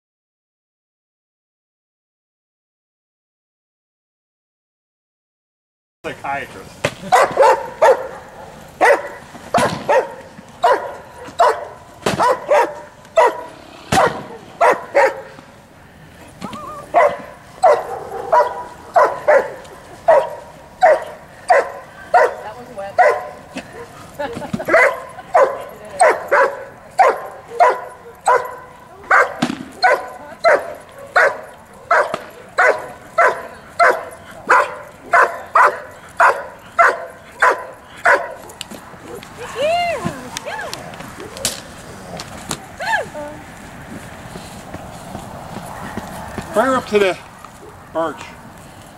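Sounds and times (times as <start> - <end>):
dog barking: 7.1 - 15.4, 16.9 - 22.4, 23.0 - 23.4, 24.7 - 38.6.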